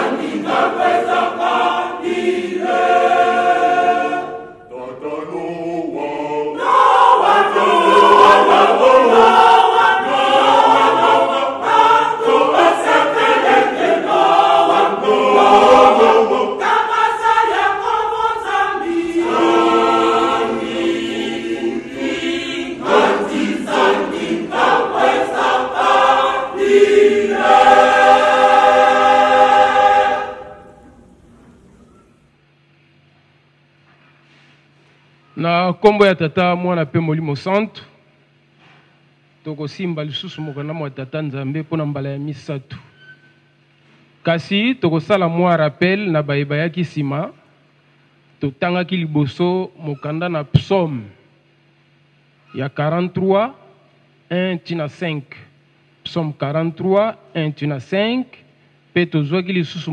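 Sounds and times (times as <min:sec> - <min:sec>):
choir singing a hymn: 0:00.0 - 0:31.3.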